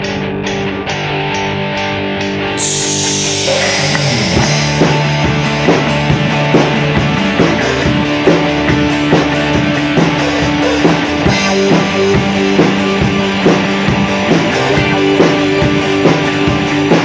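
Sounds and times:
rock band playing: 0.0s - 17.0s.

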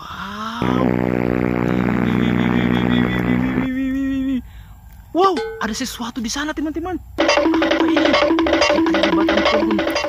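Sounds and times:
buzzy electronic tone: 0.6s - 3.8s.

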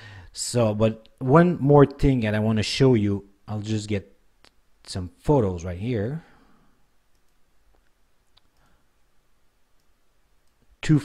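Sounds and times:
computer mouse clicks: 7.1s - 8.7s, 9.8s - 10.7s.

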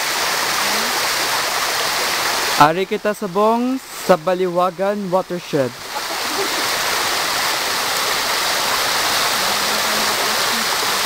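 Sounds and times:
stream cascading over rocks: 0.0s - 11.0s.

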